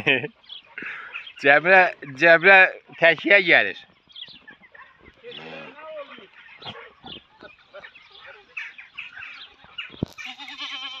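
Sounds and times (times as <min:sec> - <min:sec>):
goats bleating: 0:05.2 - 0:07.0, 0:10.1 - 0:11.0.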